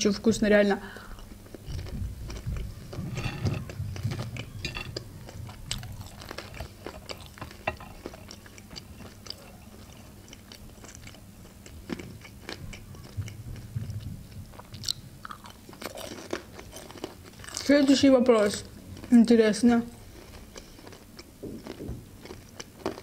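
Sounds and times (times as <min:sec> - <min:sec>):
close chewing of dumplings: 0:01.0 - 0:19.2, 0:20.0 - 0:23.0.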